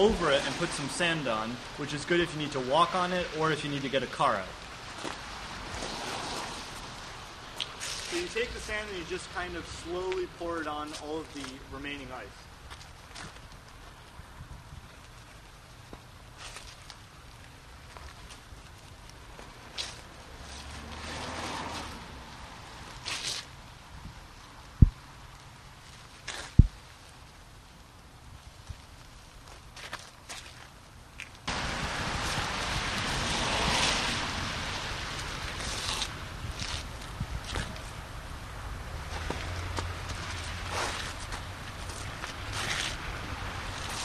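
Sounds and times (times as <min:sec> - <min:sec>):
steady rushing noise: 0:00.0 - 0:16.4, 0:31.4 - 0:44.0
footsteps scuffing on pavement: 0:04.9 - 0:09.3, 0:10.0 - 0:14.2, 0:15.0 - 0:22.0, 0:22.8 - 0:23.5, 0:26.2 - 0:26.8, 0:29.4 - 0:31.4, 0:35.2 - 0:37.9, 0:39.0 - 0:44.0
sand trickling onto ice: 0:07.6 - 0:12.3.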